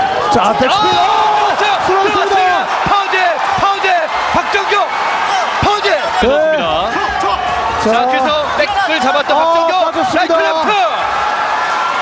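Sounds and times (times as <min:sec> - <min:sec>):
commentators shouting: 0:00.0 - 0:12.0.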